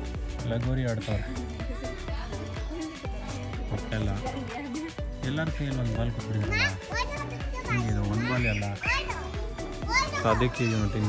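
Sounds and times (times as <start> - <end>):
background music: 0.0 - 11.0
children shouting: 6.9 - 11.0.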